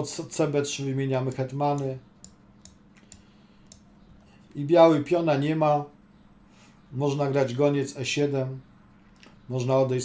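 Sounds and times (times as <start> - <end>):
low steady hum: 0.0 - 10.0
faint mouse clicks: 1.8 - 3.9.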